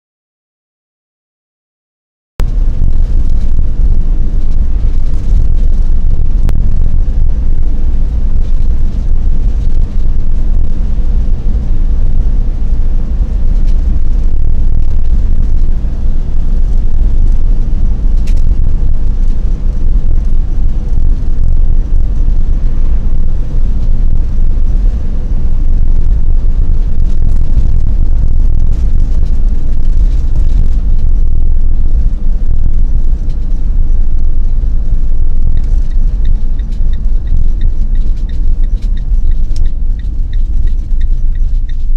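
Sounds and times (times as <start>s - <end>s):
road noise: 2.4s - 41.9s
vehicle engine rumble: 2.4s - 41.9s
wind noise: 2.4s - 41.9s.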